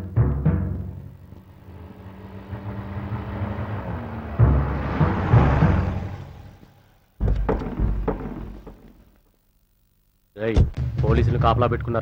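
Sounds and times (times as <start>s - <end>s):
car engine driving up: 0.6s - 9.0s.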